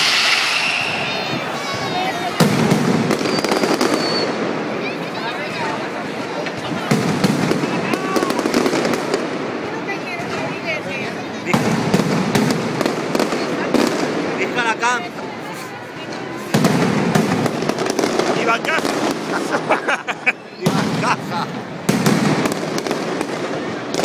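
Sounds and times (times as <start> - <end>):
firecracker bangs and aerial bursts: 0.0 - 4.8, 6.4 - 10.6, 11.4 - 15.2, 16.4 - 19.7, 20.6 - 24.0.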